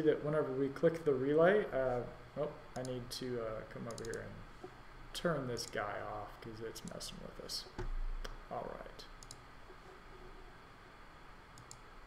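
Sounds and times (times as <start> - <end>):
computer mouse clicks: 3.9 - 4.3, 9.2 - 9.4, 11.5 - 11.9.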